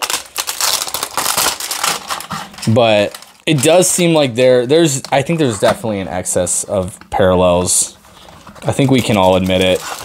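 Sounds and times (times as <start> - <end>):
plastic shrink wrap crinkling: 0.0 - 10.0.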